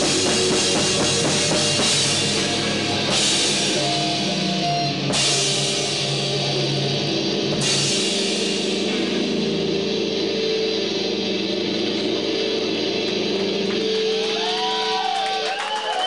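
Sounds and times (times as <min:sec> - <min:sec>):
live rock band playing: 0:00.0 - 0:16.0.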